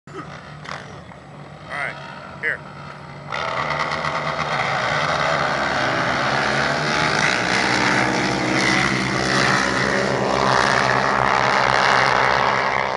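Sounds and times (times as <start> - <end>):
quad engines at full throttle: 0.1 - 12.9.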